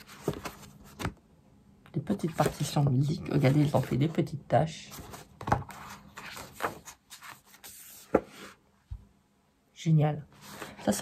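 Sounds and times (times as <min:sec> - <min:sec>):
paper rustling: 0:00.0 - 0:01.2, 0:04.9 - 0:08.6.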